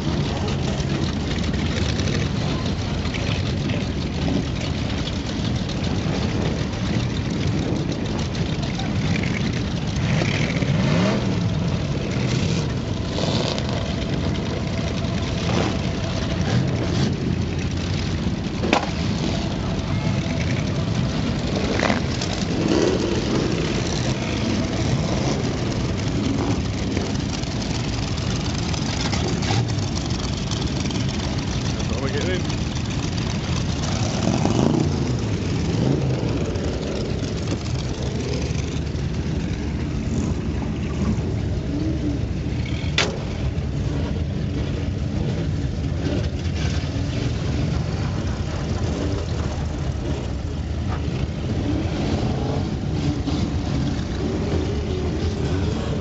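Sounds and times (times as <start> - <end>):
hot rod engines idling: 0.0 - 56.0
engine revving: 7.6 - 56.0.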